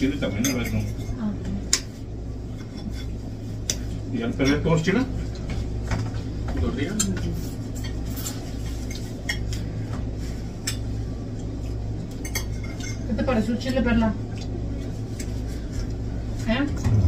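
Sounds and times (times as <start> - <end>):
steady low hum: 0.0 - 17.0
cutlery clinking on plates: 0.3 - 1.2, 12.1 - 13.1.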